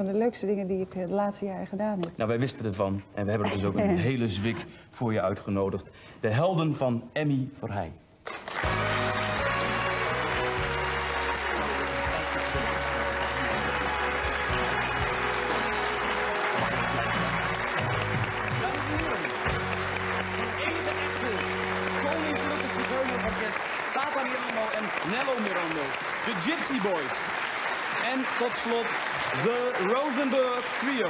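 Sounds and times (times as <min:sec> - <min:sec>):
audience applauding: 0:08.2 - 0:31.0.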